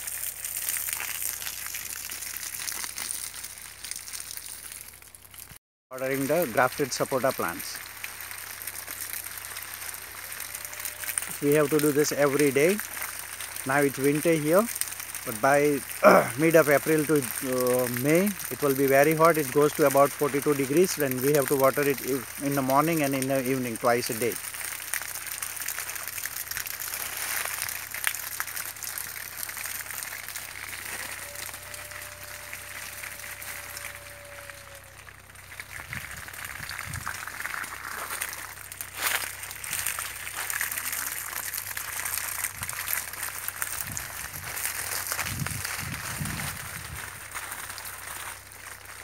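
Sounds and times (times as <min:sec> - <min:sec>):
hose water splashing through leaves: 0:00.0 - 0:49.0.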